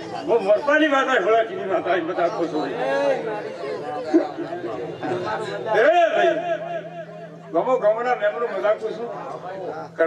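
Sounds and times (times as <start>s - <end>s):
people chattering: 0.0s - 10.0s
man talking into a microphone: 0.1s - 3.3s, 7.5s - 10.0s.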